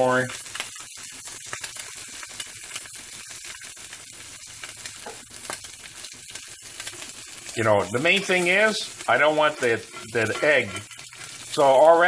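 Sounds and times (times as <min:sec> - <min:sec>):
eggs sizzling in oil: 0:00.0 - 0:12.0.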